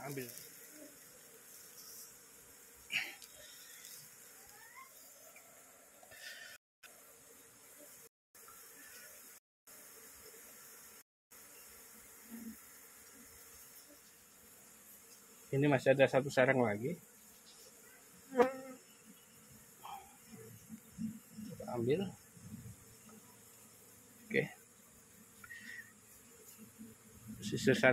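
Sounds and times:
faint bees buzzing: 0:00.0 - 0:27.9.

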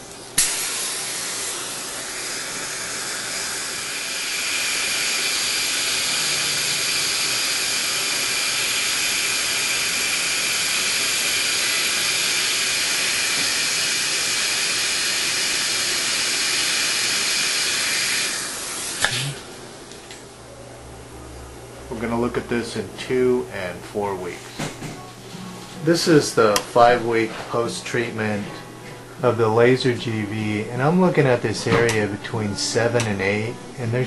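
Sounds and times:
dental suction hissing: 0:00.4 - 0:19.5.

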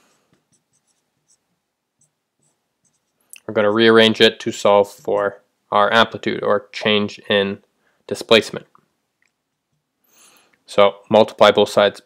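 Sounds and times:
marker scratching on whiteboard: 0:00.3 - 0:03.3, 0:04.8 - 0:05.4.

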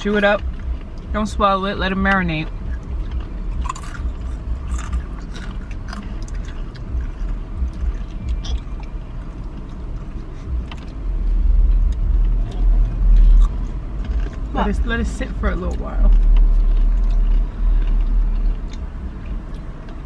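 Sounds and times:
low rumble in car cabin: 0:00.0 - 0:20.0
crunchy chips being chewed: 0:02.5 - 0:20.0.

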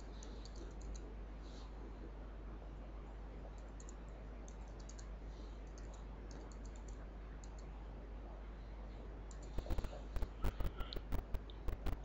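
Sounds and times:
computer keyboard typing: 0:00.0 - 0:01.1, 0:03.6 - 0:05.1, 0:05.7 - 0:07.6, 0:09.3 - 0:12.0
low hum and hiss: 0:00.0 - 0:12.0.

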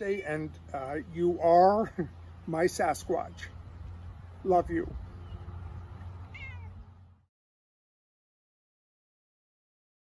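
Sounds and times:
cat meowing: 0:06.2 - 0:06.8.

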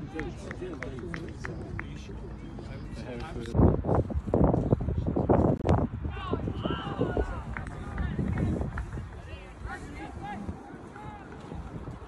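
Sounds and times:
indistinct chatter of spectators: 0:06.3 - 0:12.0.

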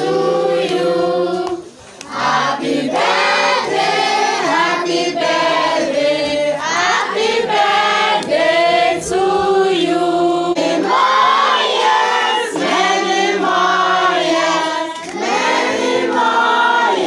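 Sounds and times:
women and children singing: 0:00.0 - 0:17.0.

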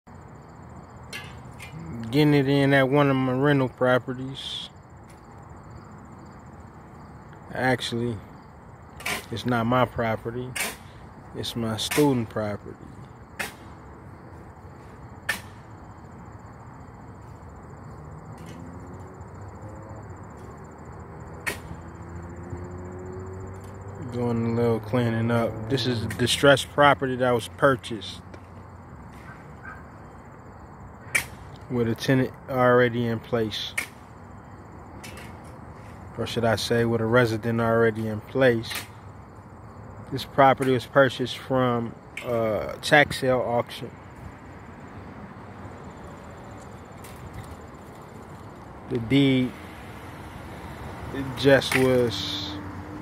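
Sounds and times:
crickets chirping: 0:00.1 - 0:53.0.

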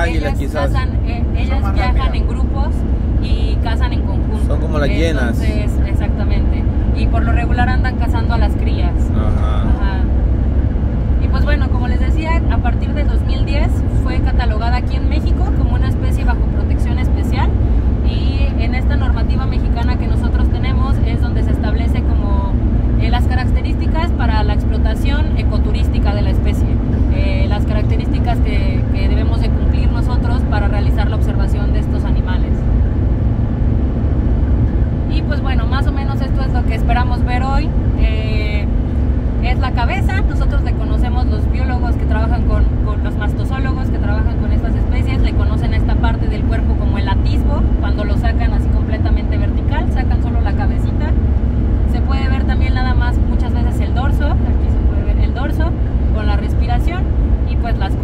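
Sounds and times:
woman talking: 0:00.0 - 0:09.1, 0:09.7 - 0:10.2, 0:11.2 - 0:32.6, 0:35.1 - 0:38.8, 0:39.4 - 0:51.2, 0:51.8 - 0:58.0
road rumble inside vehicle: 0:00.0 - 0:58.0.

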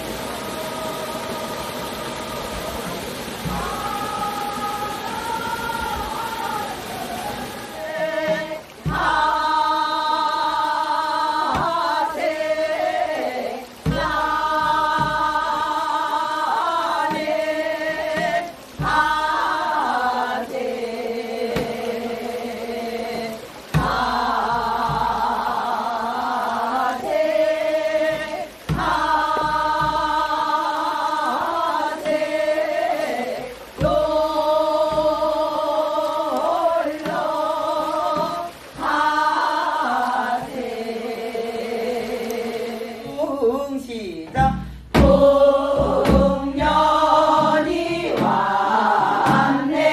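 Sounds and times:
hourglass drum strokes: 0:00.0 - 0:43.4, 0:44.2 - 0:49.9
person singing folk song with vibrato: 0:00.0 - 0:49.9.

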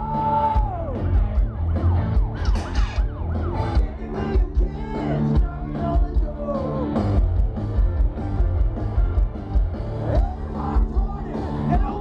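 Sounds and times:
rock band playing live: 0:00.0 - 0:12.0
siren-like lead pitch swoops: 0:01.3 - 0:03.8.

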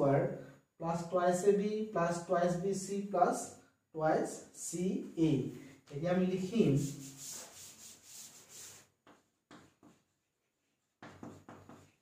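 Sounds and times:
rubbing chalk off a blackboard: 0:05.9 - 0:12.0.

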